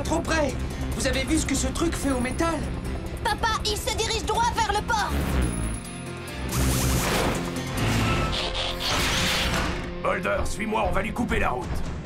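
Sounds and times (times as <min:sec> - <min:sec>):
cartoon action music: 0:06.4 - 0:10.0.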